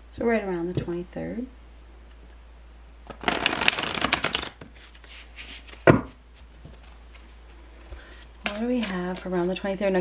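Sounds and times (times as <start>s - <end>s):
cards being shuffled: 3.0s - 9.6s.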